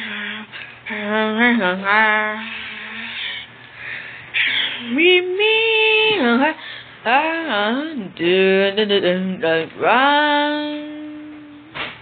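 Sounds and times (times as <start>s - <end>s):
raspy breathy voice noises: 2.4s - 5.0s.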